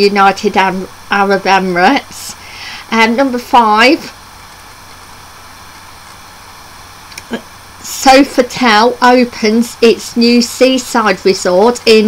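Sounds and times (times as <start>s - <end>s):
faint low hum: 0.0s - 12.0s
microphone hiss: 0.0s - 12.0s.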